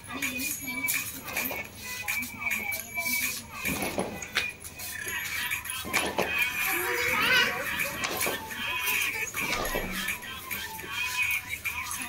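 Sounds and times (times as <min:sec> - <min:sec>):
music playing: 0:00.0 - 0:12.0
young children's voices: 0:06.5 - 0:10.1.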